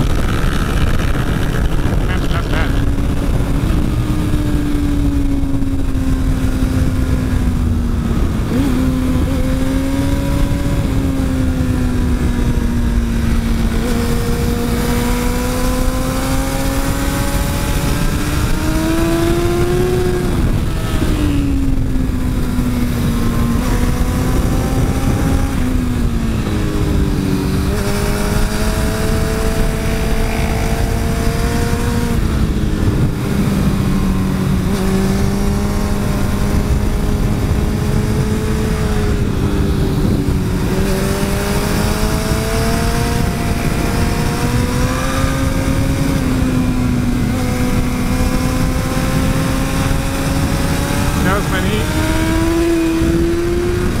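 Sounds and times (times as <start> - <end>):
motorcycle engine revving: 0.0 - 54.0
wind and road noise: 0.0 - 54.0.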